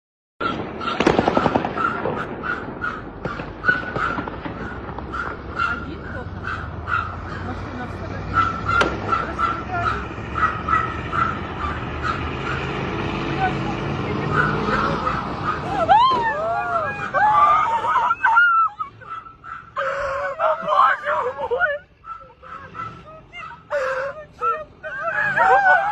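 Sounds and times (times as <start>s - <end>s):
crows cawing: 1.8s - 7.6s
people screaming and shouting: 13.4s - 25.9s.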